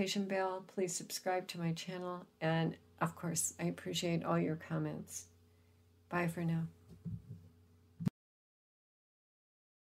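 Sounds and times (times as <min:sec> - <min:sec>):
faint steady hum: 0:00.0 - 0:08.1
soft low thuds: 0:06.9 - 0:08.1.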